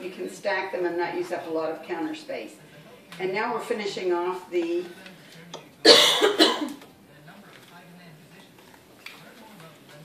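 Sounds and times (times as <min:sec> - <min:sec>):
person coughing: 0:05.8 - 0:06.8.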